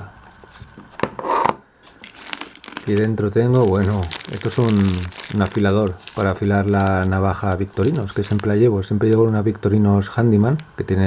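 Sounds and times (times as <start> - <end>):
plastic bag rustling and crinkling: 1.8 - 10.8.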